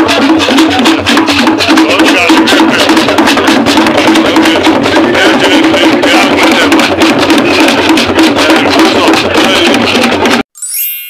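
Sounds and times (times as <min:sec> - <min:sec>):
hand drums played fast: 0:00.0 - 0:10.4.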